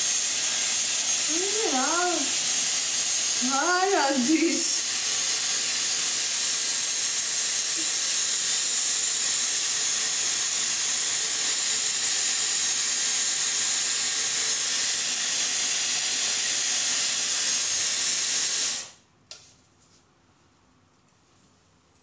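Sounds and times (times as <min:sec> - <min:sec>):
hot-air brush blowing: 0:00.0 - 0:19.0.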